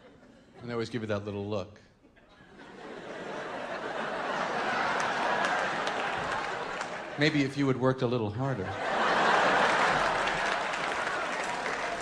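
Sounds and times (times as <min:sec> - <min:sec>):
audience applauding: 0:03.9 - 0:07.8, 0:08.9 - 0:12.0.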